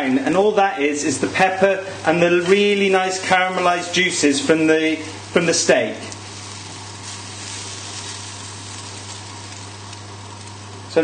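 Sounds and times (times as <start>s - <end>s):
low steady hum: 0.0s - 11.0s
sauce sizzling in a frying pan: 1.2s - 11.0s.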